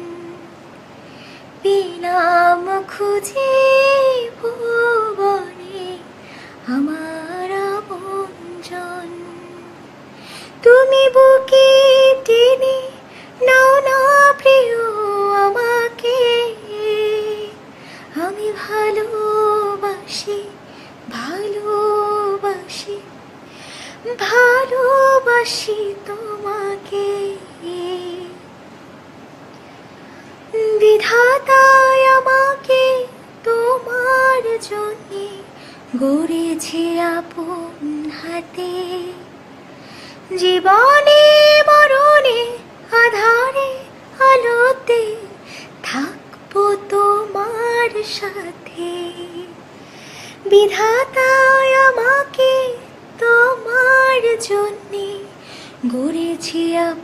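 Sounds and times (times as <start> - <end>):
woman singing unaccompanied: 0.0 - 0.6, 1.4 - 23.2, 23.9 - 28.6, 30.5 - 39.4, 40.0 - 57.0.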